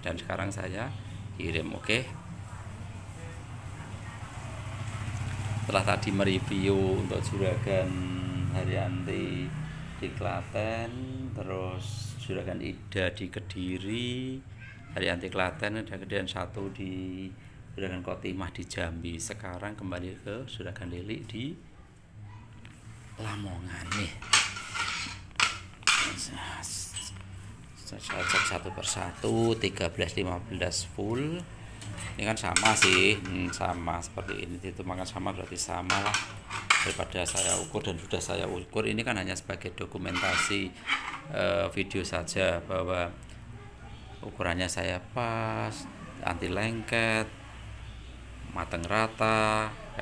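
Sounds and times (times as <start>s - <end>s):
metal scraping rattle: 23.8s - 26.2s, 40.0s - 41.3s.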